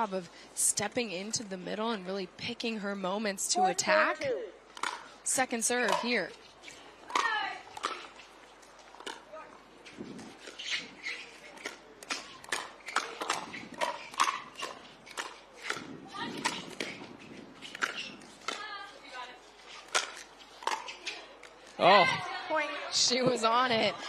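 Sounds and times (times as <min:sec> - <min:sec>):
paddles hitting plastic ball: 0:04.7 - 0:05.1, 0:07.1 - 0:08.2, 0:11.6 - 0:17.0, 0:19.8 - 0:21.6.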